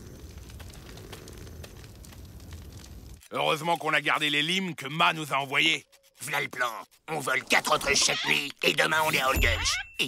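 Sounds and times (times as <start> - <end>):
low rumble of night ambience: 0.0 - 4.4
campfire crackling: 0.0 - 9.2.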